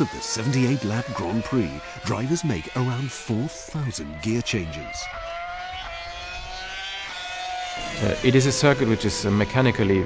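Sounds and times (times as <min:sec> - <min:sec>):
racing car engine at high revs: 0:00.0 - 0:10.0.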